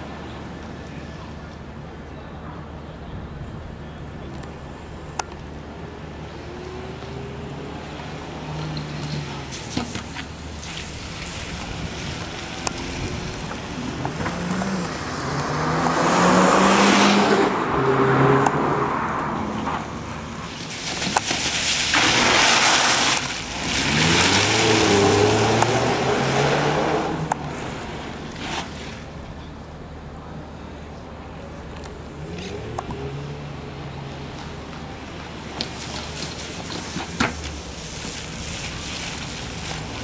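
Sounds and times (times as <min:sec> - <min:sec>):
car engine revving: 0:05.6 - 0:29.1.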